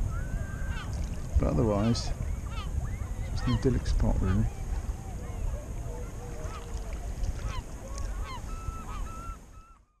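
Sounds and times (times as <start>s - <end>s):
waterbirds calling: 0.0s - 10.0s.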